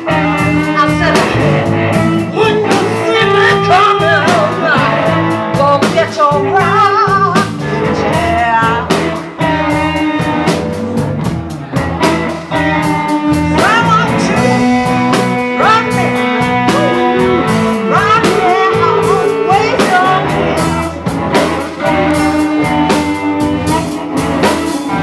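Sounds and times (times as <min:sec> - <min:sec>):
woman singing lead vocal: 0:00.0 - 0:09.2, 0:13.4 - 0:21.1
bass guitar: 0:00.0 - 0:25.0
drums: 0:00.0 - 0:25.0
electric guitars: 0:00.0 - 0:25.0.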